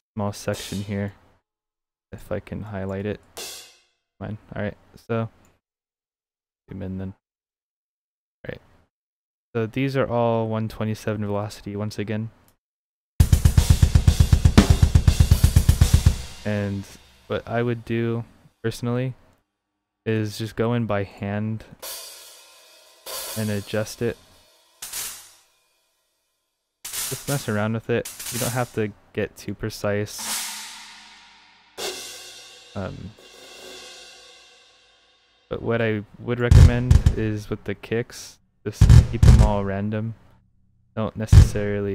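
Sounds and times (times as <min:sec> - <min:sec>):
fast kick drum hits: 0:13.2 - 0:17.2, 0:36.5 - 0:37.3, 0:38.8 - 0:39.6, 0:41.4 - 0:41.6
steady cymbals: 0:13.3 - 0:17.4, 0:21.8 - 0:25.6, 0:30.2 - 0:35.5.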